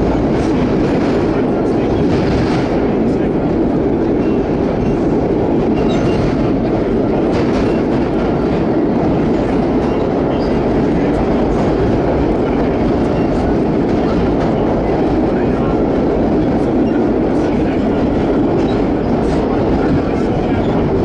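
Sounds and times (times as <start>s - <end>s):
subway wheels rumbling on rail: 0.0s - 21.0s.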